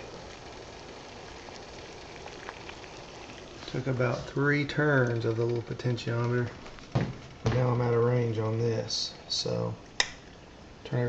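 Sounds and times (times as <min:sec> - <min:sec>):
water boiling in a pot: 0:00.0 - 0:11.0
small pops: 0:10.0 - 0:10.2.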